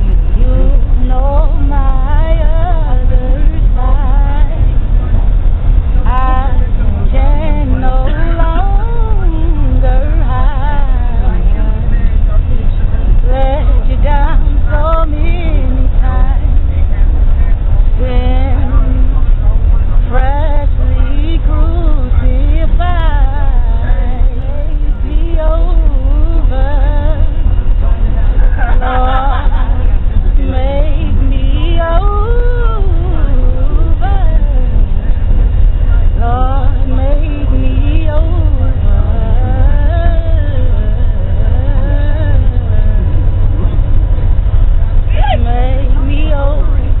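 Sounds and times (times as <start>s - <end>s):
person singing gospel: 0.0s - 4.8s, 6.0s - 11.9s, 28.5s - 34.9s
moving bus rumble: 0.0s - 47.0s.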